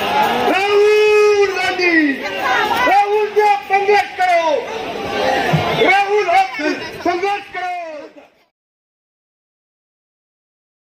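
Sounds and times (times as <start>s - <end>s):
man shouting over loudspeakers: 0.0s - 8.3s
crowd chatter: 0.0s - 8.5s.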